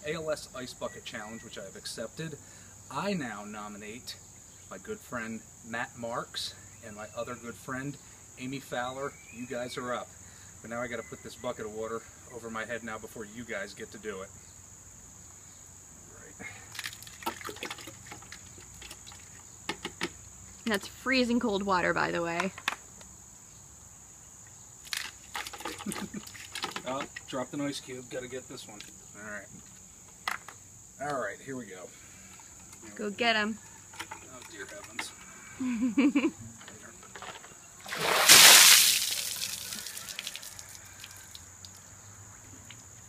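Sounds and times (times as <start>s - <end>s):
insects chirring: 0.0s - 43.0s
ice cubes clattering into bucket: 16.8s - 18.2s
water splashing: 37.8s - 40.7s
water streaming and dripping: 37.8s - 41.8s.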